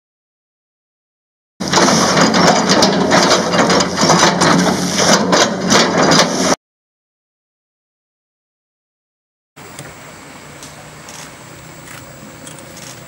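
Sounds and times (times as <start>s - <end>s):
excavator running: 1.6s - 6.6s, 9.6s - 13.0s.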